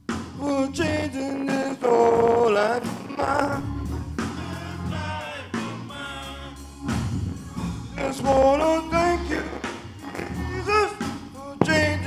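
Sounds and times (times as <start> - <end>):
band with steady bass: 0.0 - 12.0
men's vocal group singing gospel: 0.4 - 12.0.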